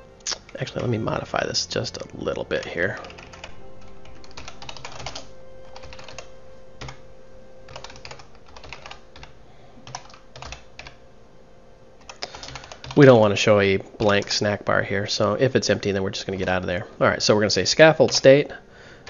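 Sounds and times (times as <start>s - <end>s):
keyboard keystrokes clicking: 4.1s - 7.0s, 7.7s - 11.0s, 12.0s - 13.0s.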